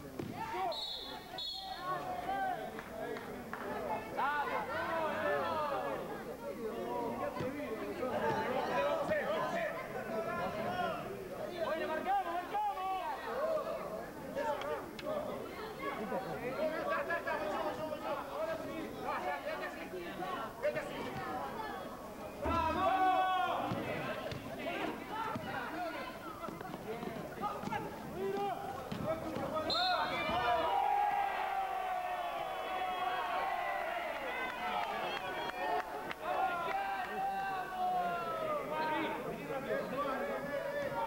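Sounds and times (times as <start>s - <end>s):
murmur of chatter: 0.0s - 41.0s
people calling and shouting: 0.0s - 41.0s.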